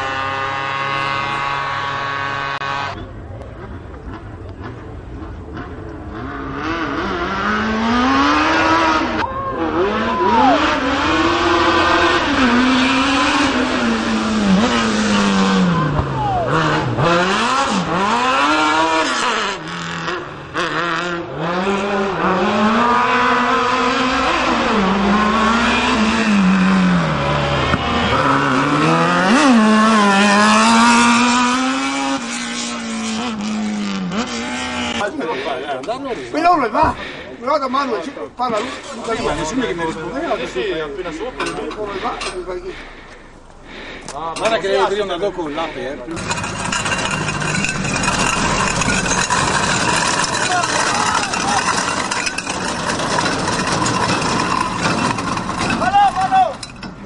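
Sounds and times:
small engine revving high: 0.0 - 3.0, 6.1 - 35.1.

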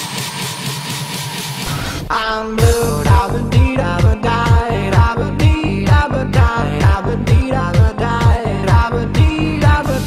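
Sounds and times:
deep bass: 1.6 - 10.0.

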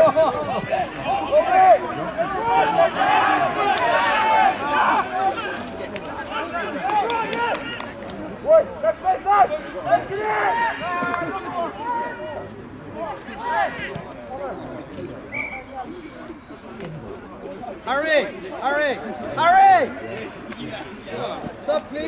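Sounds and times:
players shouting: 0.0 - 14.1.

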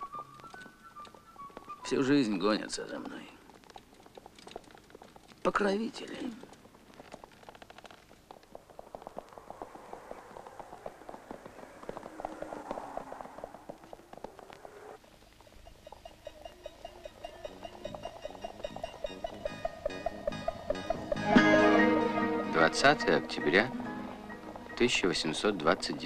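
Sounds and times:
sleigh harness bells jingling: 15.4 - 26.0
plucked-string music: 16.5 - 25.0.

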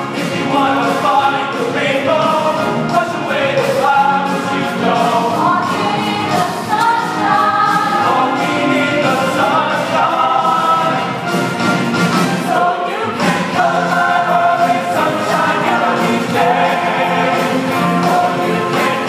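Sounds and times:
mixed choir singing in harmony: 0.0 - 19.0.

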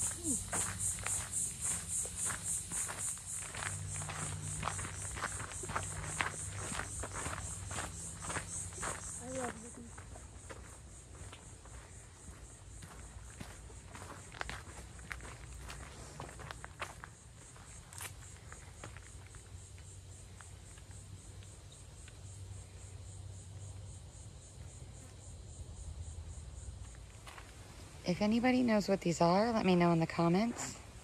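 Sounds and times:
footsteps crunching on dirt: 0.0 - 21.0
insects chorus: 0.0 - 31.0.

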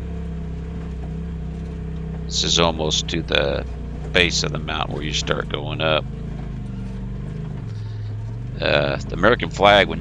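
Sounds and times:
vehicle engine running: 0.0 - 10.0.

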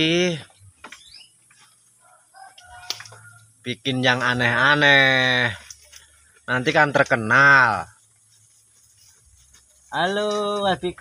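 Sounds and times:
bird chirps: 0.0 - 2.1.

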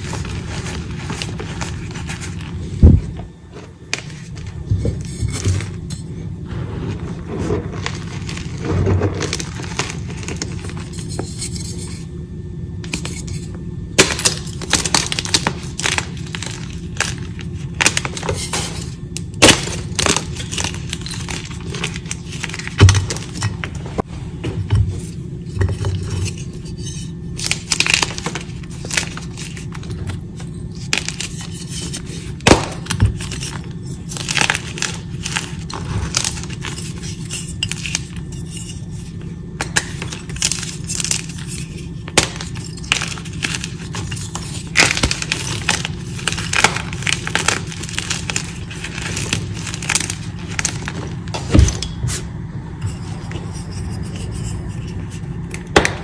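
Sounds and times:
chalk blocks cracking and crunching: 7.2 - 12.0, 12.9 - 23.7, 25.8 - 38.8, 39.6 - 51.6.

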